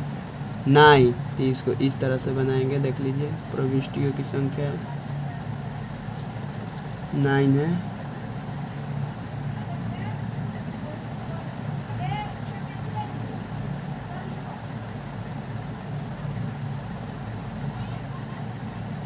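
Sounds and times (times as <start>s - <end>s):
low background rumble: 0.0s - 19.0s
faint distant voices: 0.6s - 15.5s, 17.2s - 19.0s.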